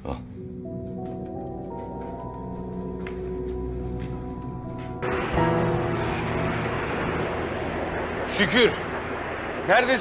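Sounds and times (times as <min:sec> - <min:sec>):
distant jet aircraft noise: 0:05.0 - 0:10.0.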